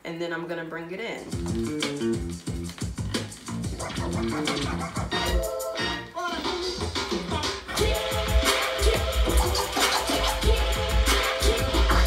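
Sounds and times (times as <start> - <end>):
vinyl scratching: 1.1 - 12.0
hip-hop record playing: 1.2 - 12.0.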